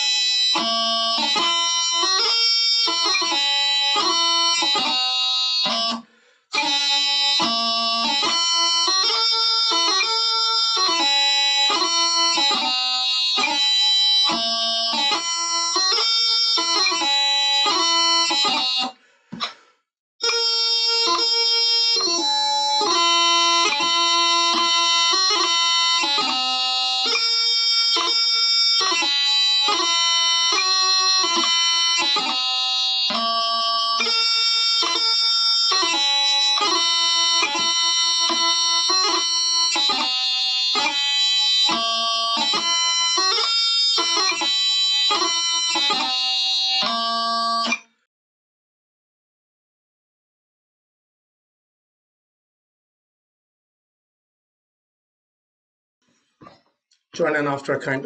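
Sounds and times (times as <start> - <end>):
bagpipe chanter melody: 0.0 - 19.0, 20.2 - 48.0.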